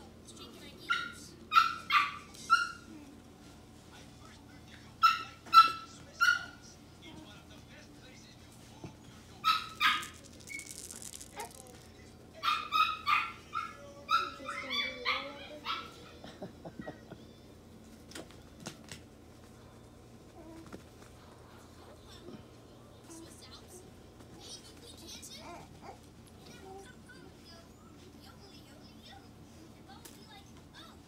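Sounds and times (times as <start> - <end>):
puppies yipping and barking: 9.4 - 11.5, 12.4 - 16.2.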